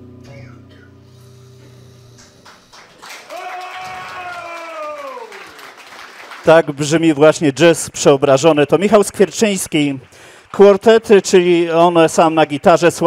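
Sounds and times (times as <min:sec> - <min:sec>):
audience applauding: 0:02.2 - 0:07.5, 0:08.8 - 0:13.0
person whooping: 0:03.2 - 0:05.6.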